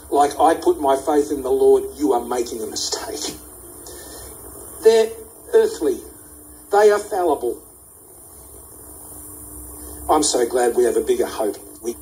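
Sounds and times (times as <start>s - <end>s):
faint background hiss: 0.0s - 12.0s
low steady hum: 0.0s - 12.0s.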